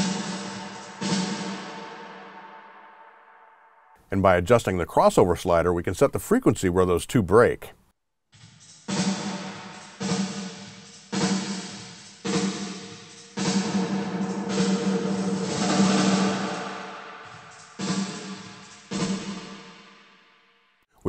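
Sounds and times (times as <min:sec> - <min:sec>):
snare drum hits with reverb: 0:00.0 - 0:02.3, 0:08.9 - 0:20.0.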